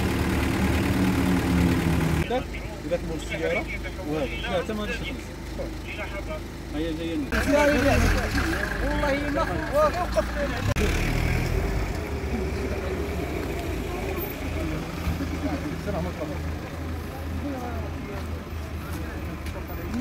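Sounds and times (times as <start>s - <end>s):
car engine idling: 0.0s - 20.0s
people talking: 2.2s - 11.1s, 12.2s - 20.0s.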